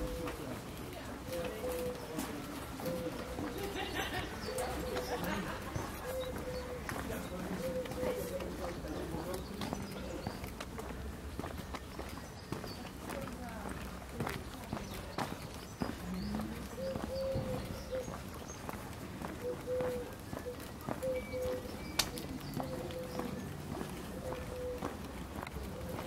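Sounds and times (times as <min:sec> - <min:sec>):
footsteps on cobblestones: 0:00.0 - 0:26.0.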